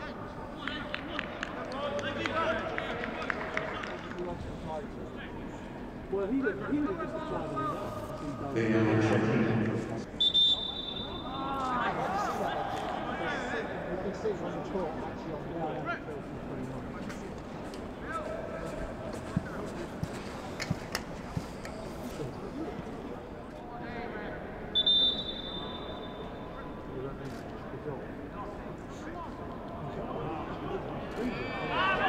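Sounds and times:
referee's whistle blast: 10.2s - 11.4s, 24.8s - 26.4s.

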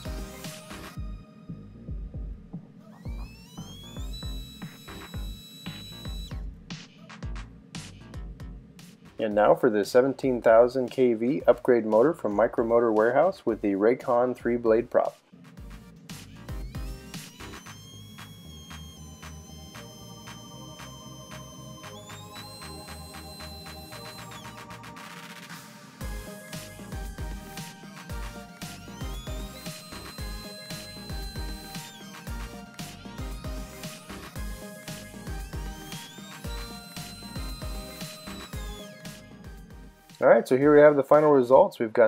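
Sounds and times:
micro motor propeller whine: 0.0s - 6.5s, 15.5s - 40.2s
background music with steady beat: 0.0s - 41.7s.

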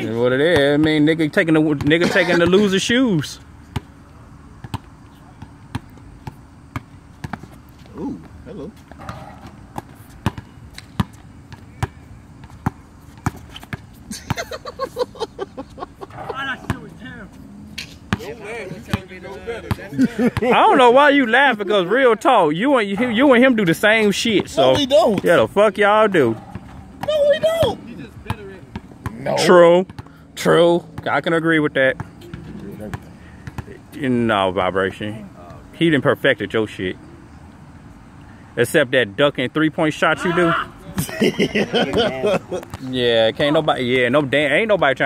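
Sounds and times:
basketball bouncing on hard court: 4.6s - 7.6s, 8.8s - 14.6s, 16.1s - 16.9s, 26.3s - 29.2s, 29.8s - 30.2s, 32.0s - 33.8s.

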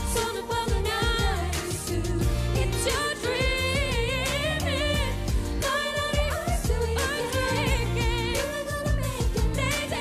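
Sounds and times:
live band with drums and bass: 0.0s - 10.0s
woman singing pop: 0.0s - 10.0s.

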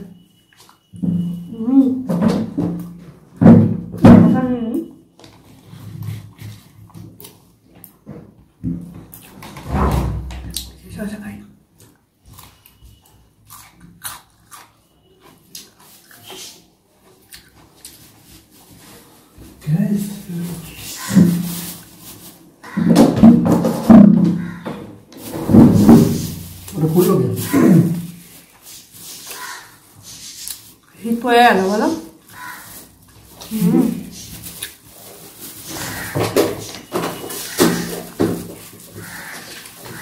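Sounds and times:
person chewing food: 11.8s - 18.8s, 34.2s - 35.4s
person speaking: 19.6s - 21.7s, 25.9s - 28.2s, 31.0s - 32.2s, 33.4s - 34.4s
mouth sound: 25.9s - 28.2s.

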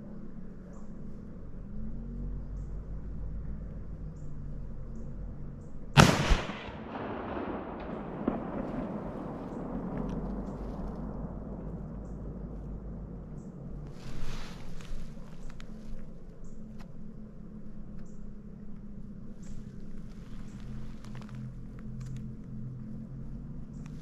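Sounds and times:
rifle shot: 6.0s - 11.7s
sharp crack: 6.0s - 12.6s
rolling echo: 6.0s - 13.8s.

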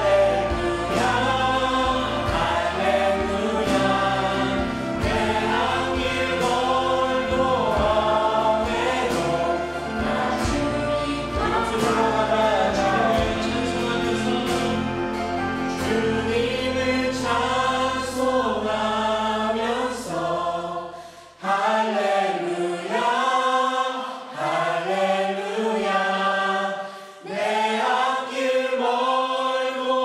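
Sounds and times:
low sustained instrumental backing: 0.0s - 18.8s
group singing praise song: 0.0s - 30.0s.

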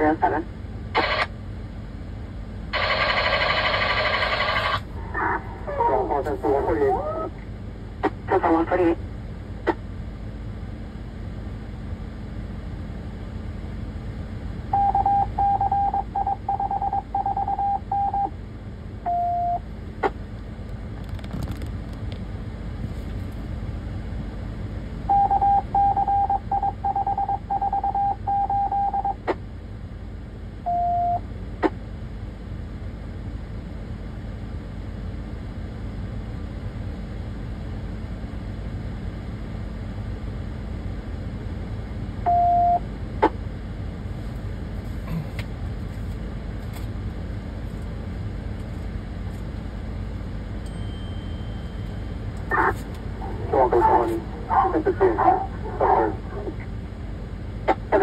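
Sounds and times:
garbled voice over police radio: 0.0s - 1.3s, 4.3s - 7.4s, 8.0s - 9.0s, 52.5s - 56.7s, 57.7s - 58.0s
steady low hum: 0.0s - 58.0s
radio static burst: 1.0s - 1.3s, 2.8s - 7.0s, 52.5s - 56.5s.

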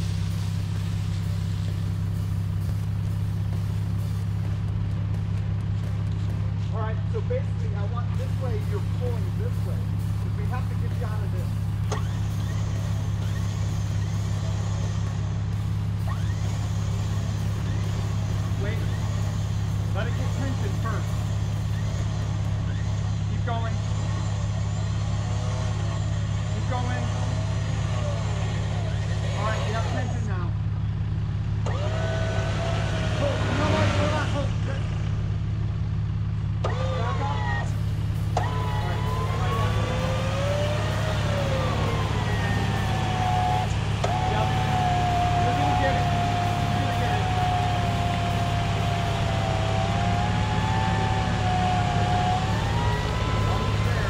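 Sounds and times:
rising and falling whines: 0.0s - 54.0s
truck engine running: 0.0s - 54.0s.

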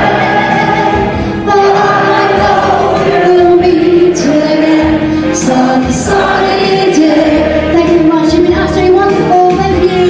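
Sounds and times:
chorus of voices singing: 0.0s - 9.0s
backing music: 0.0s - 10.0s
woman singing: 0.0s - 10.0s.

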